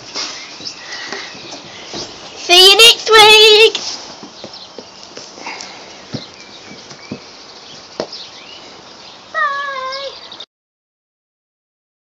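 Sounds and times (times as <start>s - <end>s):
soft thumps: 6.1s - 7.3s.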